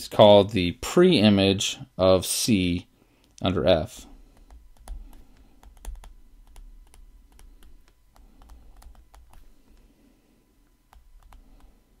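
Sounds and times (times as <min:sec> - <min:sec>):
low steady hum: 0:00.0 - 0:12.0
stylus tapping on a tablet screen: 0:04.3 - 0:09.9, 0:10.9 - 0:11.7.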